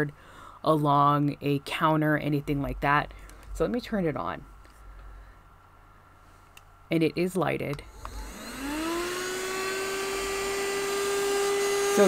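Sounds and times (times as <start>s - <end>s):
handheld vacuum motor whine: 7.9s - 12.0s.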